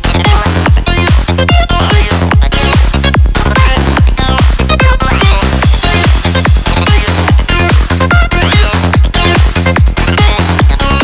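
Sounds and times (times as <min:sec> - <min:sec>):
kick drum: 0:00.0 - 0:11.0
rolling bass: 0:00.0 - 0:11.0.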